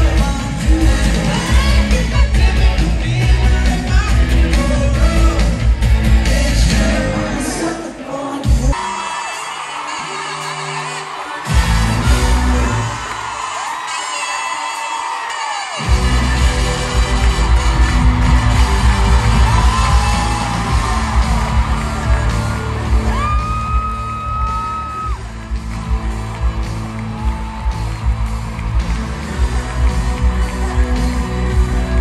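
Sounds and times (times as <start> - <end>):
live pop-rock band: 0.0 - 13.3, 15.8 - 32.0
fans screaming and whooping: 8.7 - 32.0.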